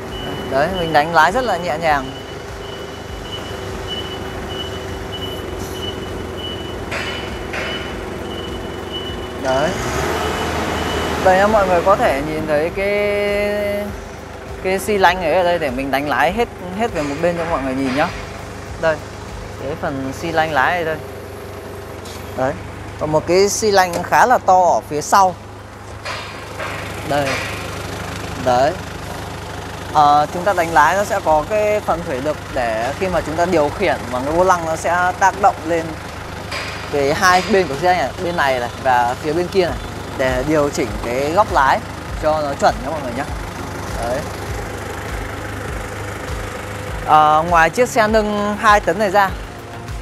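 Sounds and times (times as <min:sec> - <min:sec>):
back-up alarm beeping: 0:00.0 - 0:12.7
forklift engine humming: 0:00.0 - 0:50.0.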